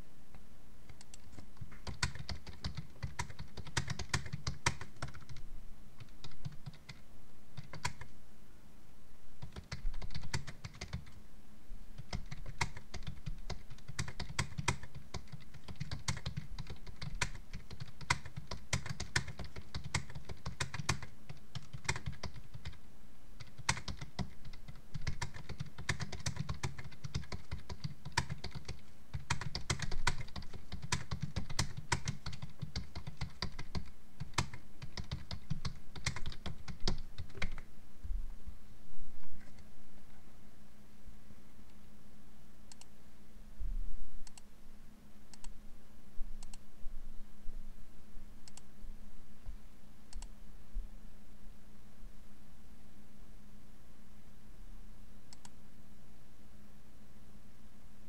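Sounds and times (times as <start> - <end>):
typing on computer keyboard: 0.9 - 5.4, 6.0 - 7.0, 7.6 - 8.1, 9.4 - 11.2, 12.0 - 22.8, 23.4 - 37.6.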